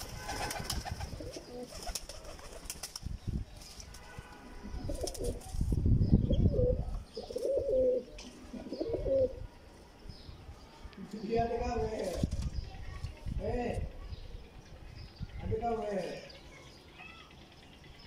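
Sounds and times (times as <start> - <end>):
wings flapping: 0.0 - 4.2, 4.9 - 5.8
pigeons cooing: 0.2 - 2.7, 4.6 - 5.6, 6.2 - 9.5.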